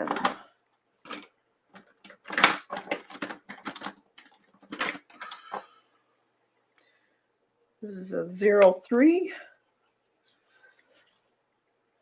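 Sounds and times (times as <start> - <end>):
knocks clicks and rustles on desk: 0.0 - 5.7.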